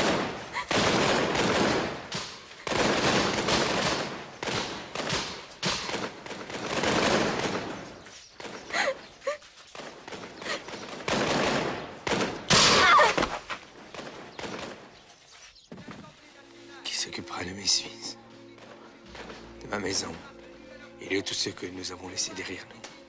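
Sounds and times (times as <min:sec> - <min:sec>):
musket shots: 0:00.0 - 0:08.7, 0:09.7 - 0:15.0.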